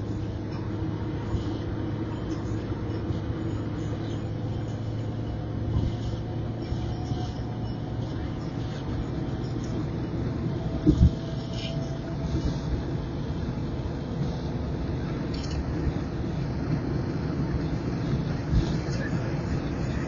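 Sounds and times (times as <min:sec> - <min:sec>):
car cabin tyre and engine drone: 0:00.0 - 0:20.0.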